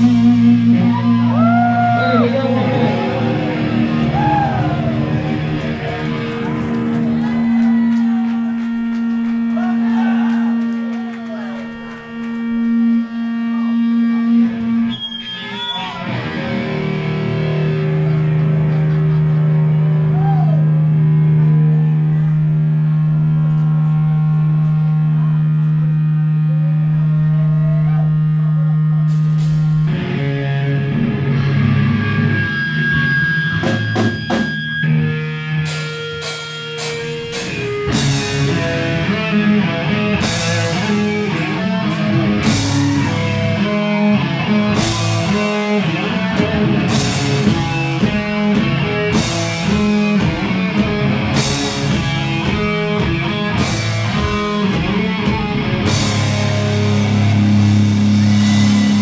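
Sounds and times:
drums: 0.0 - 26.1, 27.2 - 59.0
distorted electric guitar chords: 0.0 - 59.0.

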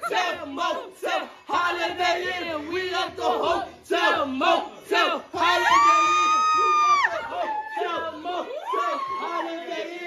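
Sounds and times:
young people shouting: 5.0 - 10.0
high-pitched scream: 5.4 - 9.7.

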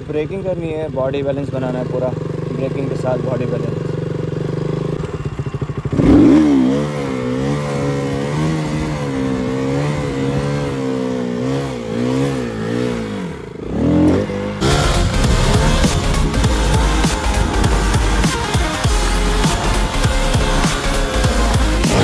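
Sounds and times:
motorcycle engine revving: 0.0 - 22.0
music: 14.6 - 22.0.

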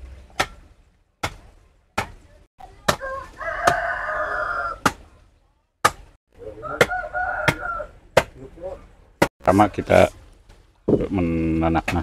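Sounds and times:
machete chopping wooden stick: 0.2 - 3.9, 4.8 - 5.1, 5.8 - 6.2, 6.8 - 8.4
rooster crowing: 3.0 - 4.8, 6.6 - 8.0.

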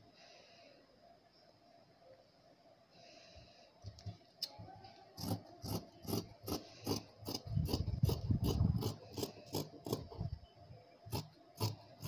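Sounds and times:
loud rubbing noise: 5.2 - 10.2.

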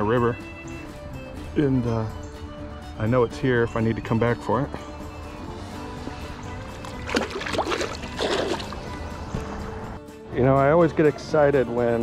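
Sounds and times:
background music with held notes: 0.0 - 12.0
water splashing and sloshing: 6.4 - 9.8.

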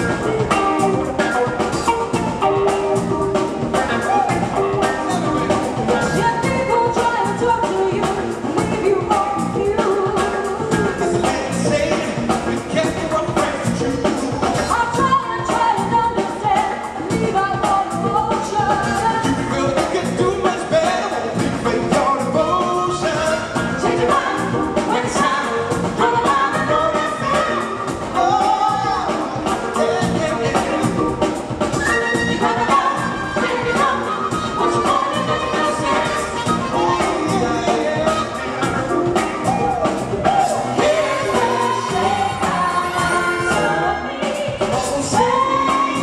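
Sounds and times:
funk and soul band playing: 0.0 - 46.0
person singing: 0.0 - 46.0.

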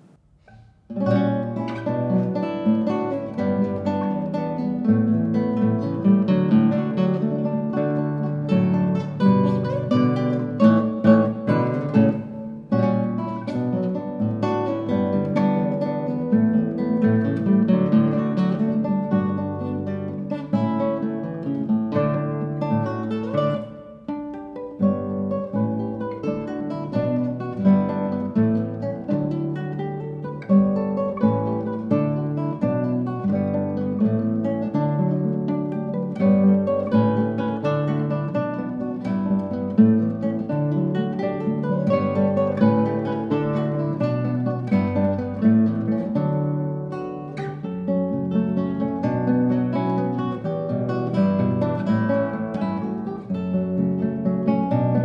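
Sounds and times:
classical guitar duo: 0.0 - 55.0.

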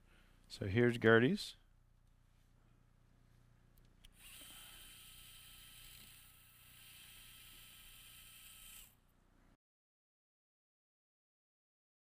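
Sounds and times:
power drill high whine: 4.2 - 9.0.

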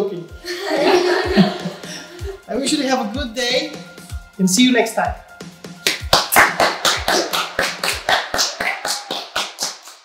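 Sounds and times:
hands clapping quickly: 5.7 - 10.0.

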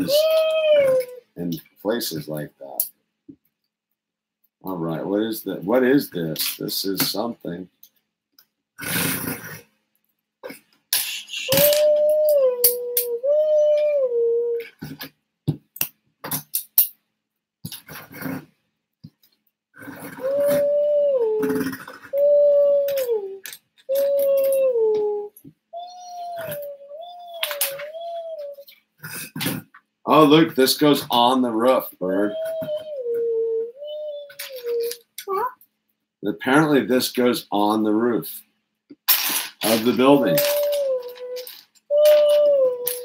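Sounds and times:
child imitating a siren: 0.0 - 1.2, 11.5 - 14.7, 20.2 - 28.6, 32.2 - 35.6, 40.1 - 43.0.

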